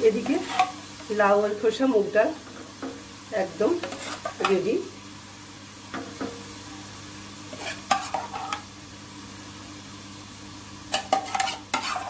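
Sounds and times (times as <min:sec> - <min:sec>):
spatula scraping a steel pot: 0:00.2 - 0:00.8, 0:03.8 - 0:04.5, 0:07.5 - 0:08.6, 0:10.9 - 0:12.0.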